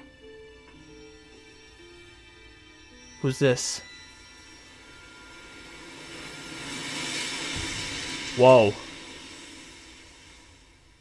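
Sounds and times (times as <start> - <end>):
steady rushing noise: 4.7 - 11.0.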